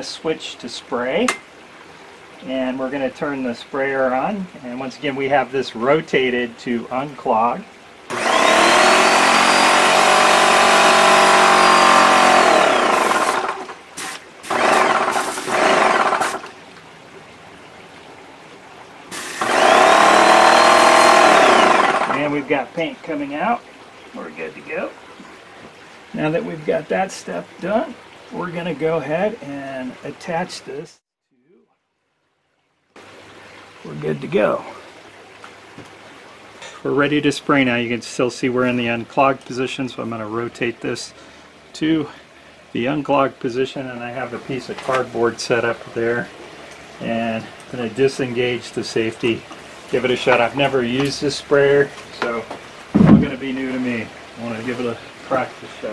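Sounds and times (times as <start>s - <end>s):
man speaking: 0.0s - 1.4s, 22.1s - 23.6s, 24.2s - 24.9s, 26.1s - 31.6s, 33.8s - 34.8s, 36.6s - 41.2s, 41.8s - 42.2s, 42.8s - 46.3s, 47.0s - 52.5s, 53.2s - 55.9s
low background hiss: 0.0s - 8.1s, 32.1s - 55.9s
pump motor humming: 8.0s - 17.6s, 19.0s - 23.6s, 41.0s - 55.9s.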